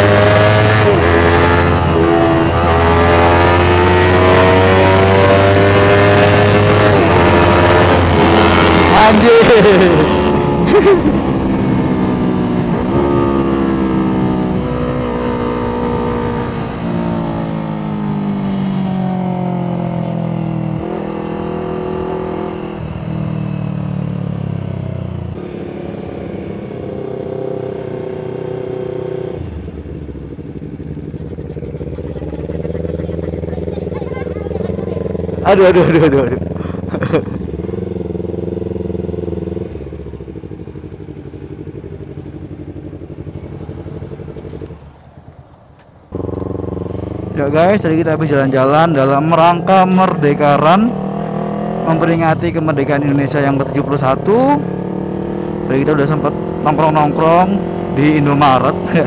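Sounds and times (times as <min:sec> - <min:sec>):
motorcycle engine accelerating: 0:00.0 - 0:59.0.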